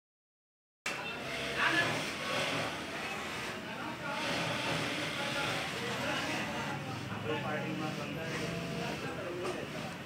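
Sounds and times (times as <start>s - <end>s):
sewing machine motor humming: 1.2s - 6.7s.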